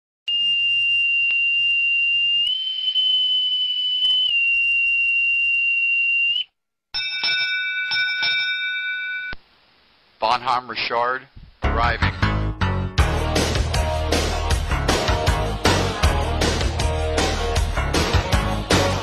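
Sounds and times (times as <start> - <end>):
ship's bell ringing: 7.0 - 9.4.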